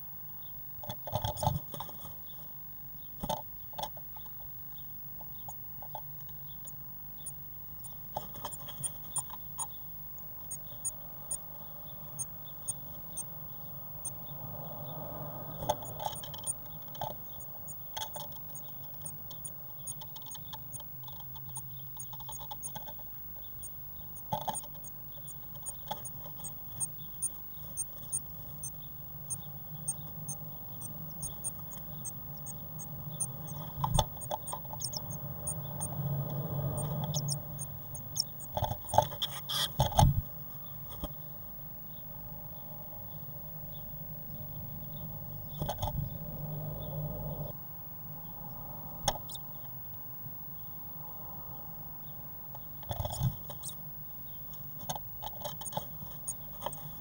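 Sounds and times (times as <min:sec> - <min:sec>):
rustling and scratching in nest: 0:00.8 - 0:13.4, 0:15.4 - 0:41.2, 0:44.4 - 0:46.2, 0:52.6 - 0:57.0
high-pitched squeaks: 0:29.3 - 0:36.0.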